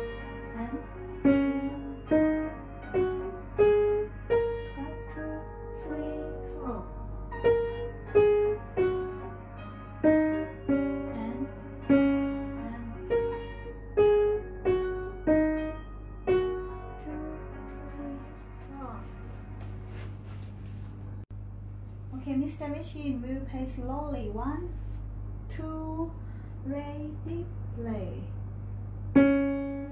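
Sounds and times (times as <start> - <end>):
slow piano piece: 0.0 - 21.3, 28.4 - 29.9.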